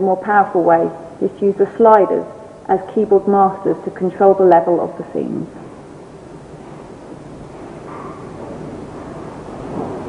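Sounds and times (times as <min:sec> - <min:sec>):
rumbling background noise: 0:00.0 - 0:10.0.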